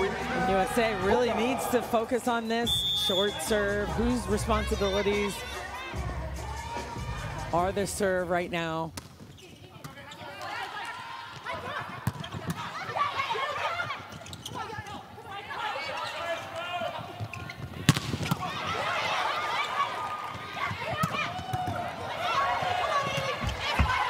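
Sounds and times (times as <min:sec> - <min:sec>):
players shouting: 0:00.0 - 0:07.8, 0:10.2 - 0:17.2, 0:18.2 - 0:24.0
crowd voices: 0:00.0 - 0:08.6, 0:09.8 - 0:24.0
volleyball being hit: 0:17.9 - 0:18.5.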